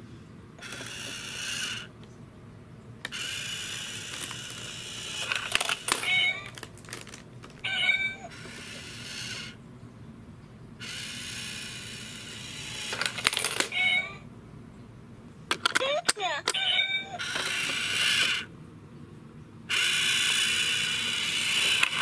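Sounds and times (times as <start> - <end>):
small toy motor whirring: 0.6 - 2.0, 3.0 - 9.6, 10.8 - 14.2, 16.2 - 18.5, 19.7 - 22.0
toy cat meowing: 5.8 - 6.6, 7.6 - 9.5, 13.5 - 14.3, 16.1 - 17.9.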